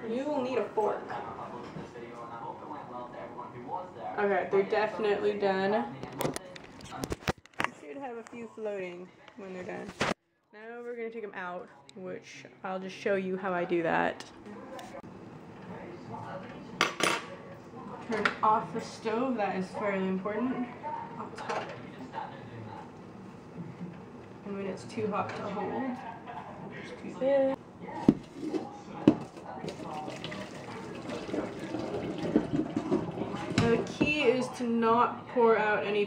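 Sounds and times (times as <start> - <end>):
water pouring into metal sink: 29.6 - 33.6.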